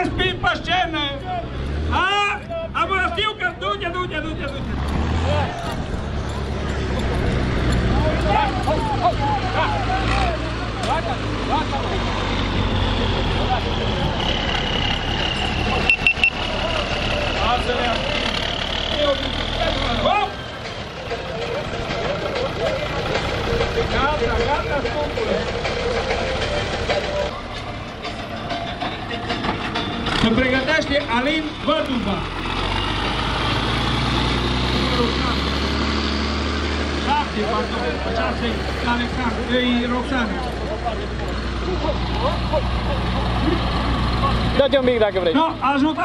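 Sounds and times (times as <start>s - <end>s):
crowd voices: 0.0s - 46.0s
tractor engine idling: 2.4s - 46.0s.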